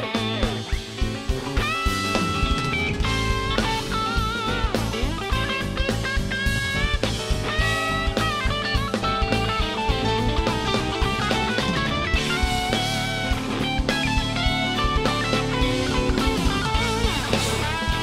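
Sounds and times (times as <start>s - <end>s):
bass guitar: 0.0s - 18.0s
drum kit: 0.0s - 18.0s
electric guitar lead: 0.0s - 18.0s.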